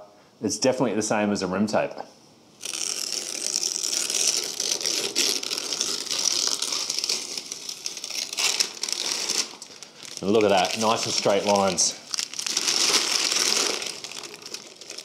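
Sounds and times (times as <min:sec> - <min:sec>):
masking tape being peeled: 0:02.6 - 0:15.0.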